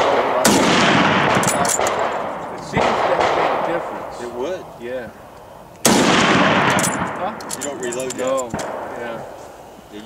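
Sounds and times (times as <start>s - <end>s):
rifle shot with echo: 0.0s - 4.2s, 5.8s - 7.8s, 8.4s - 9.4s.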